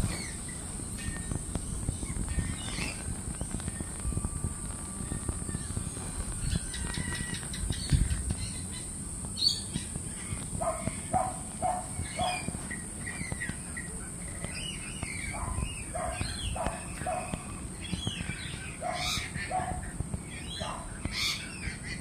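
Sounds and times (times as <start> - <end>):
higher bird chirps: 0.0 - 22.0.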